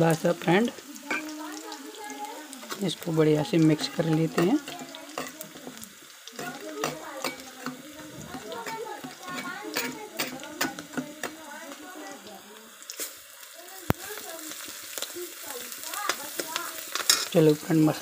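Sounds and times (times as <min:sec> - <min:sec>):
chillies sizzling in hot oil: 0:00.0 - 0:18.0
metal spoon clinking in steel bowl: 0:03.8 - 0:05.8, 0:06.4 - 0:07.9, 0:08.6 - 0:11.4, 0:16.9 - 0:17.4.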